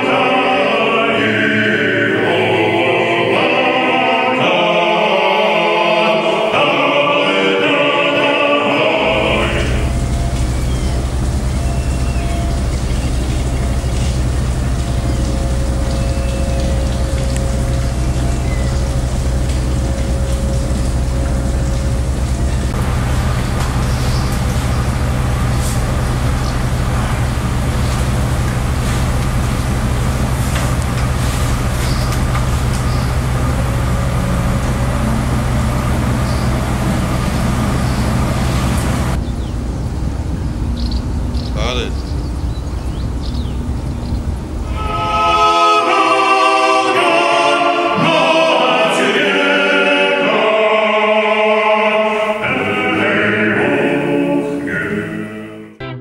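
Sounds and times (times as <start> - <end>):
ship engines humming: 0.0 - 55.8
faint steady whine: 8.5 - 45.9.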